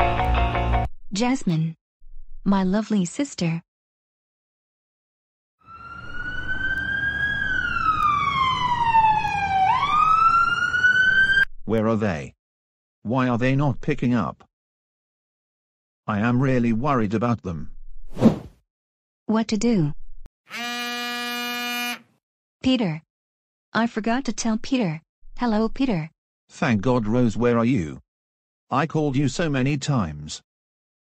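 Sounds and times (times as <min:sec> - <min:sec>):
ambulance siren wailing: 0:05.6 - 0:11.5
phone buzzing ring tone: 0:20.5 - 0:22.0.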